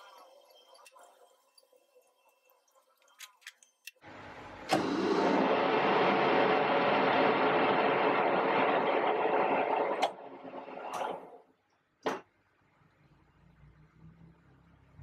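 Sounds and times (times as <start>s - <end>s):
lathe mechanical whirr: 4.0s - 11.4s.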